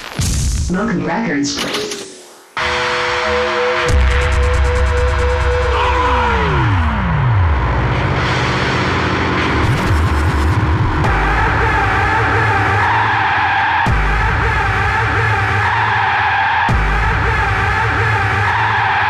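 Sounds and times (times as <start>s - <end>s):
hardcore techno music: 1.6s - 19.0s.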